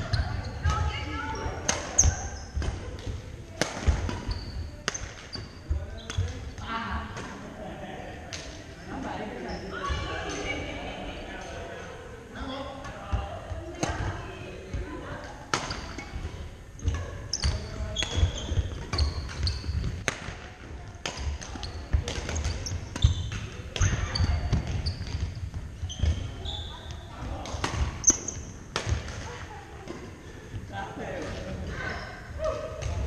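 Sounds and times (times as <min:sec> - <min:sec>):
sneakers squeaking: 0:00.0 - 0:07.4, 0:09.4 - 0:10.7, 0:15.5 - 0:33.0
racket hitting shuttlecock: 0:01.6 - 0:05.3, 0:16.9 - 0:25.3.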